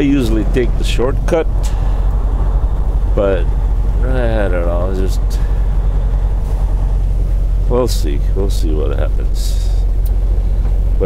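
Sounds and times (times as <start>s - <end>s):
truck diesel engine droning: 0.0s - 11.0s.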